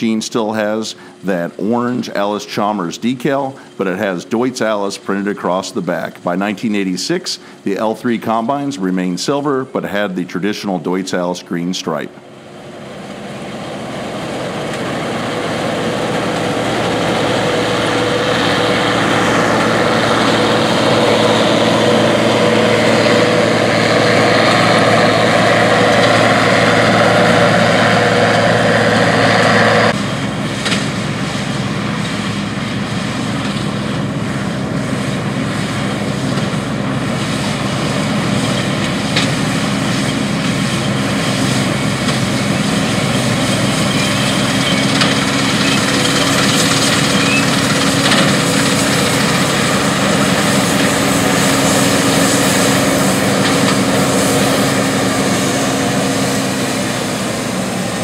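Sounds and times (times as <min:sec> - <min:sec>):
combine harvester engine and threshing: 0:00.0 - 0:58.0.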